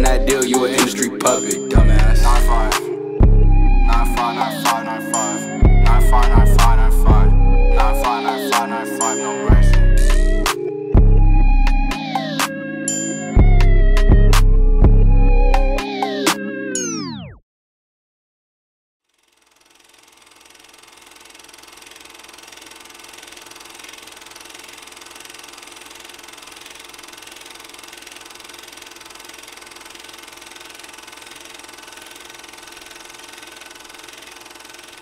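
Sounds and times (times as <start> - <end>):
film projector whirring and rattling: 19.0 - 35.0.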